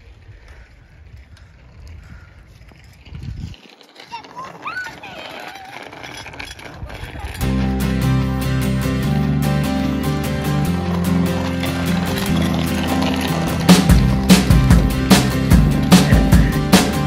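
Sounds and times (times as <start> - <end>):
distant children calling: 3.6 - 7.5, 12.9 - 17.0
street ambience low rumble: 6.6 - 17.0
background music: 7.4 - 17.0.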